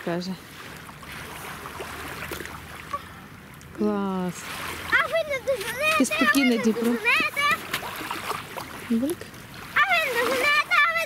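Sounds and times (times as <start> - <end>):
small waves lapping on sand: 0.0 - 11.0
water splashing: 0.0 - 11.0
child calling out: 9.8 - 11.0.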